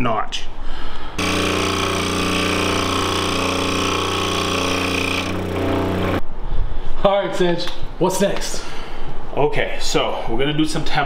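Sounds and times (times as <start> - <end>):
scroll saw buzzing: 1.2 - 6.2.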